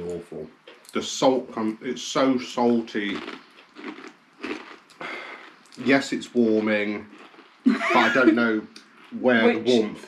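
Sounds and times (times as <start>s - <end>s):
person chewing: 2.6s - 6.0s, 6.6s - 7.6s, 8.7s - 9.2s.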